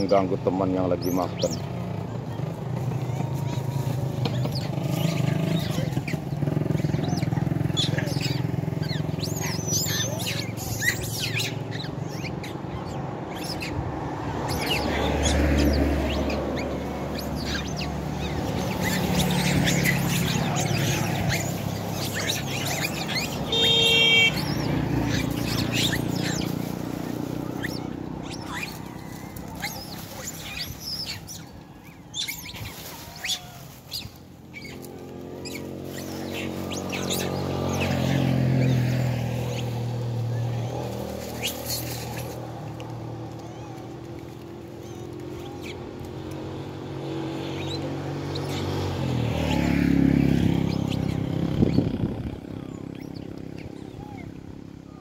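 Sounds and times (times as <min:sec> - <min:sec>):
monkeys chirping and squealing: 0:00.0 - 0:55.0
road traffic: 0:00.0 - 0:55.0.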